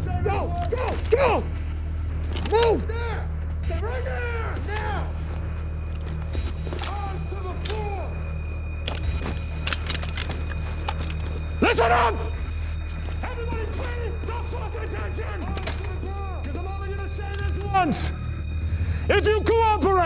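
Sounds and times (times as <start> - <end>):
men shouting commands: 0.0 - 1.8, 2.4 - 5.3, 11.6 - 12.5, 13.1 - 18.3, 19.1 - 20.0
steady low hum: 0.0 - 19.2.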